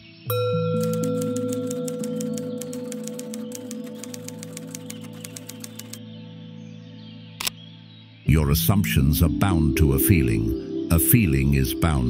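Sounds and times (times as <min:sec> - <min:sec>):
rapid keystroke clicks: 0:00.8 - 0:06.0.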